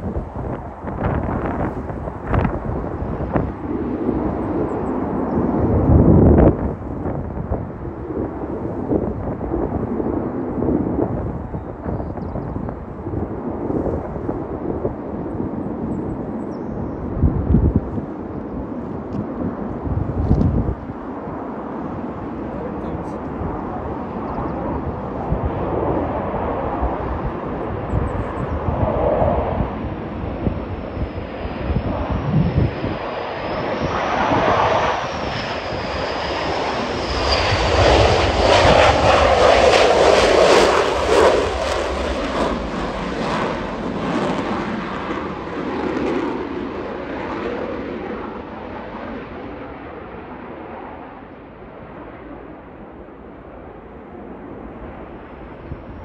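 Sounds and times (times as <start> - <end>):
jet roar with high whine: 0.0 - 56.0.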